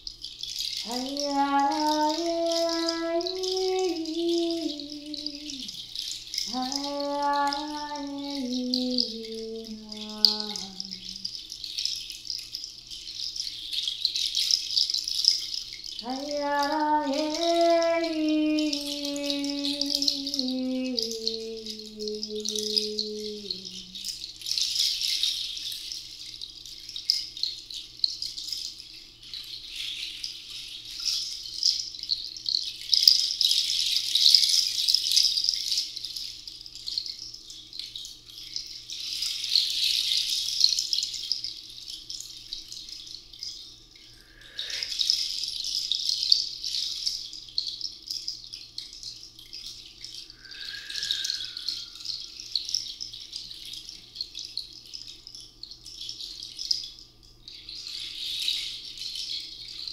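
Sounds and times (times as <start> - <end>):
handheld rattle shaken: 0.0 - 59.9
held sung note: 0.8 - 5.8, 6.4 - 11.2, 16.0 - 24.1, 50.3 - 52.3.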